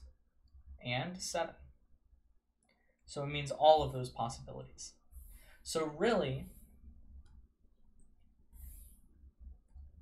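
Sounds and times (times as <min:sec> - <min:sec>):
soft hiss: 0:02.6 - 0:10.0.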